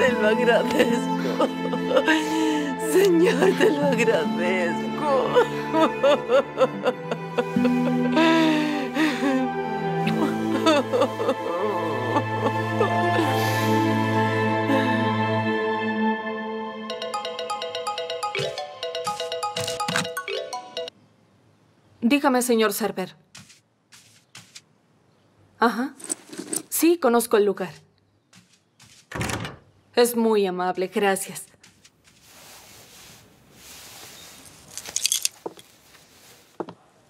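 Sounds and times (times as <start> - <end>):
soundtrack music held notes: 0.0 - 20.9
mobile phone ringtone: 16.9 - 20.9
metallic jingle of small objects: 26.0 - 26.8, 34.4 - 35.7.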